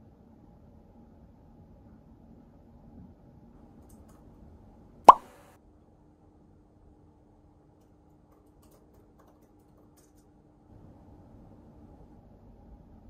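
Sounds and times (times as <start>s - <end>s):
water drop plop: 5.1s - 5.3s.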